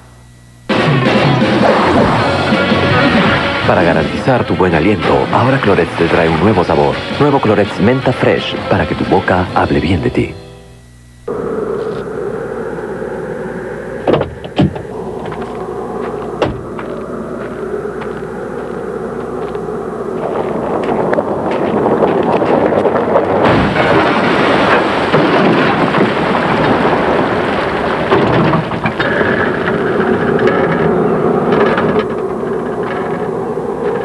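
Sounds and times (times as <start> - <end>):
car sliding and rumbling: 11.3 - 34.0
car crashing into ground: 21.6 - 31.1.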